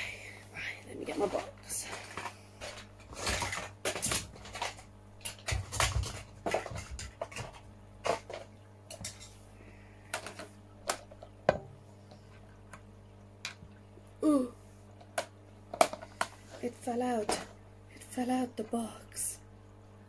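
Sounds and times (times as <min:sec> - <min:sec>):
faint steady hum: 0:00.0 - 0:20.0
hard objects knocking together: 0:01.1 - 0:09.2.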